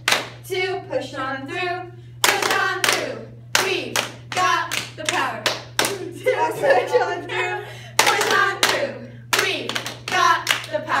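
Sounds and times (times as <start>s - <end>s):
rhythmic hand claps: 0.0s - 0.5s, 2.2s - 6.2s, 8.0s - 11.0s.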